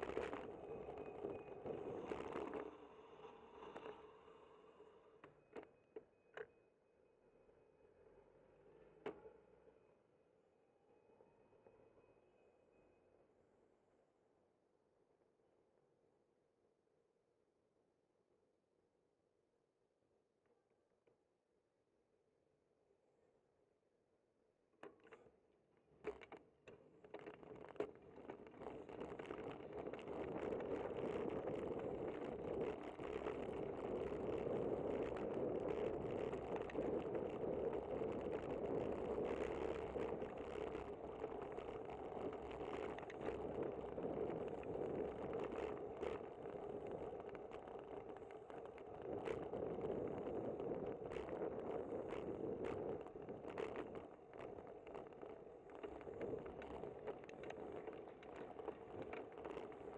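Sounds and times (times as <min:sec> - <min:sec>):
muffled road and wind noise: 0:00.0 - 0:05.8, 0:26.0 - 0:59.9
bicycle clicks and rattles: 0:26.0 - 0:59.9.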